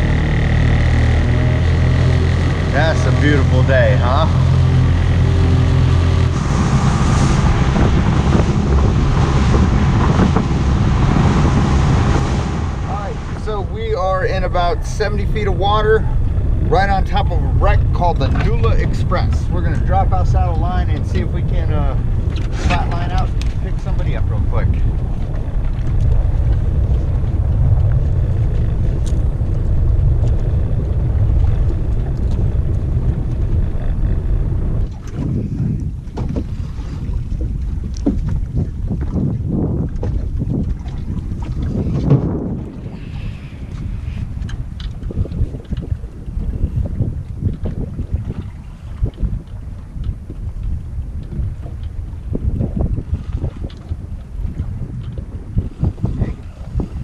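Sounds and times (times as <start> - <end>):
wind rumbling on microphone: 0.0 - 57.0.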